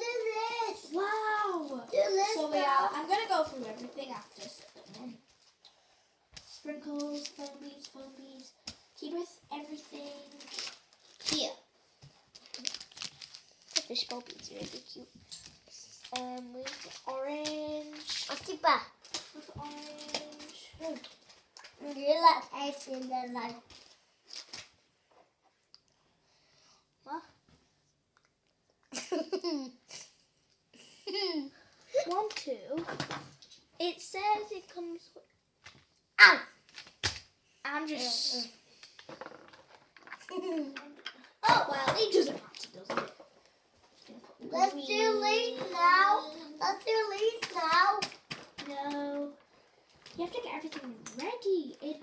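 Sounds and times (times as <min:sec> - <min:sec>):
child's voice: 0:00.0 - 0:05.3, 0:06.5 - 0:10.6, 0:11.3 - 0:11.7, 0:15.7 - 0:21.1, 0:21.8 - 0:23.6, 0:33.8 - 0:35.2, 0:36.2 - 0:36.6, 0:37.7 - 0:38.6, 0:40.3 - 0:43.2, 0:44.1 - 0:49.4, 0:50.2 - 0:52.0
plastic sachets rustling: 0:00.6 - 0:05.6, 0:06.7 - 0:24.7
small child giggling: 0:28.9 - 0:30.1, 0:30.9 - 0:31.5, 0:40.2 - 0:40.9.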